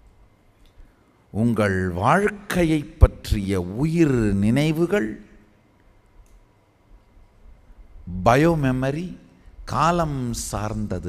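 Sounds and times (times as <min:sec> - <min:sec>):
man's voice: 0:01.4 - 0:05.3, 0:08.1 - 0:11.0
small click: 0:05.8 - 0:06.5.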